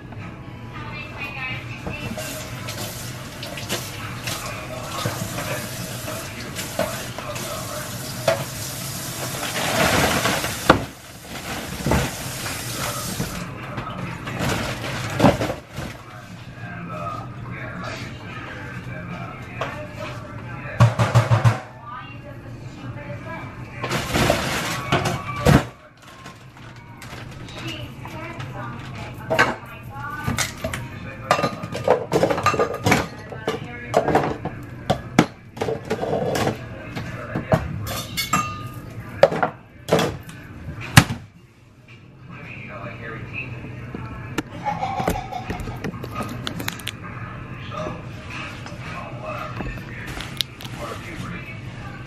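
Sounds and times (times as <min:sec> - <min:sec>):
dishes and pans clinking: 0:30.3 - 0:40.2, 0:44.4 - 0:46.6.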